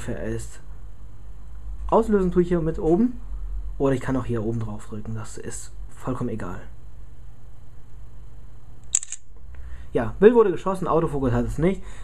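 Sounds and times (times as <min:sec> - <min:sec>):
low steady hum: 0:00.0 - 0:12.0
camera shutter double click: 0:08.9 - 0:09.3.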